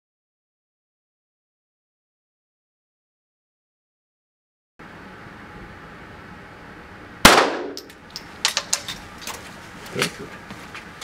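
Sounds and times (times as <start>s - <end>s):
gunshot echoing in hall: 7.3s - 7.8s.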